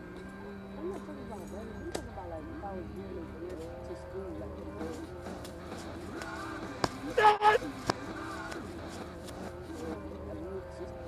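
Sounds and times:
person yelling: 7.1s - 7.6s.

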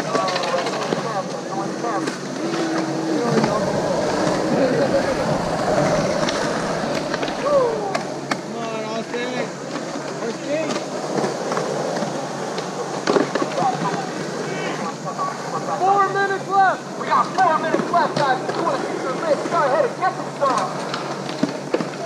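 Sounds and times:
skateboard clacks: 0.0s - 8.5s, 9.6s - 15.9s, 17.1s - 22.0s
voices calling out: 0.0s - 9.1s, 12.2s - 20.8s
skateboard wheels rolling on concrete: 0.0s - 22.0s.

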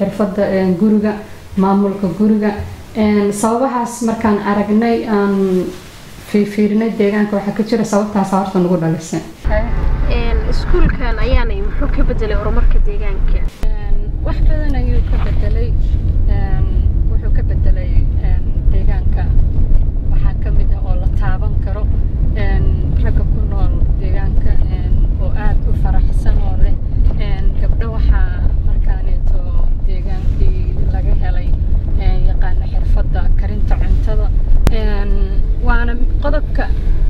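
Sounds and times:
person speaking: 9.4s - 14.0s
car engine and tyres rumbling: 9.4s - 37.0s.

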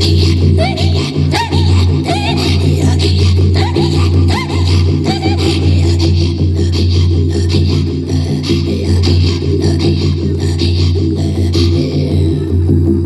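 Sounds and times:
low pulsing drone: 0.0s - 13.0s
woman throat singing: 0.0s - 13.0s.

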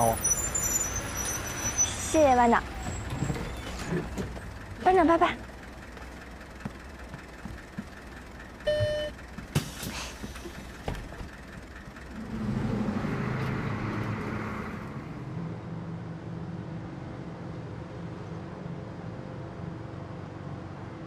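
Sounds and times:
bus engine drone: 0.0s - 21.0s
short beep: 8.7s - 9.2s
air brake hiss: 9.6s - 10.4s.

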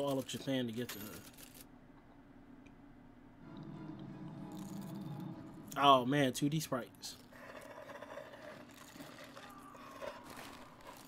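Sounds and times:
low held hum tones: 0.3s - 7.4s.

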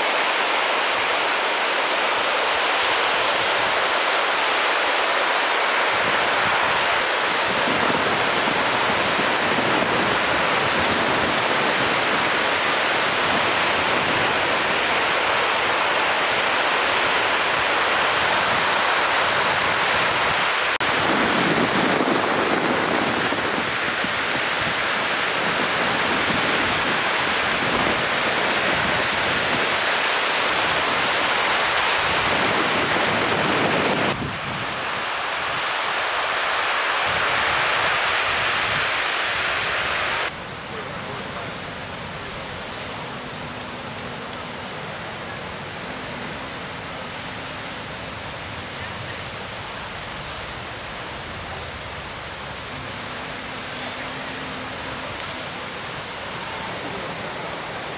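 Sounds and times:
ocean waves crashing: 0.0s - 57.9s.

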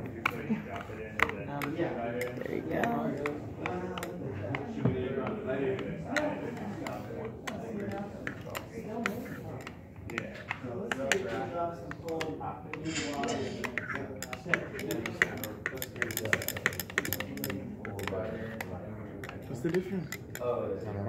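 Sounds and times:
people talking indistinctly: 0.0s - 21.0s.

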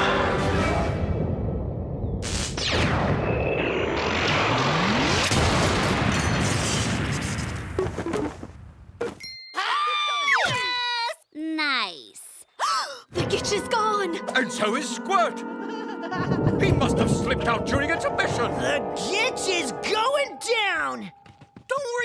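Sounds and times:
cartoon noisy blast with whooshes: 2.2s - 7.6s.

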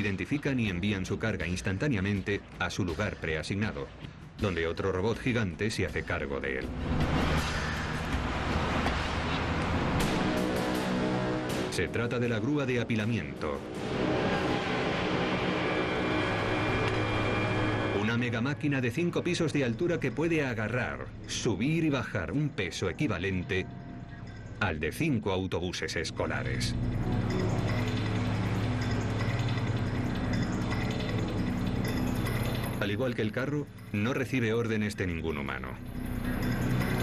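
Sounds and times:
crane machinery drone: 13.6s - 18.7s, 26.3s - 32.8s.

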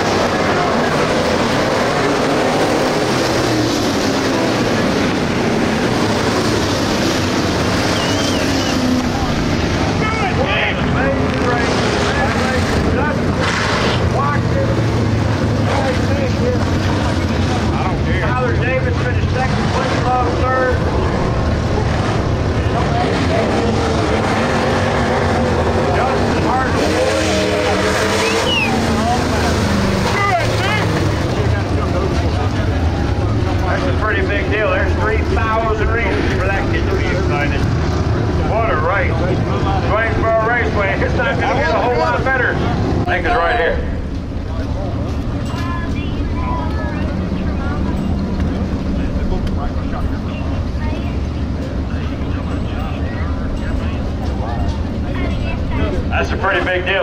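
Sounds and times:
people's voices: 0.0s - 57.0s
race car engines low drone: 0.0s - 57.0s.

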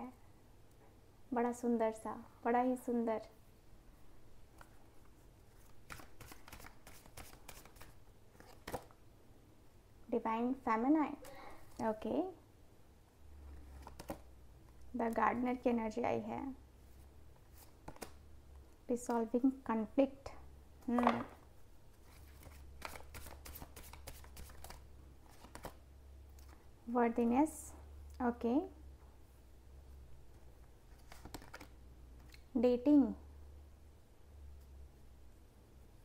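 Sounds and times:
cards being shuffled: 5.6s - 9.0s, 13.6s - 14.3s, 17.4s - 18.2s, 22.0s - 25.8s, 30.9s - 32.4s.

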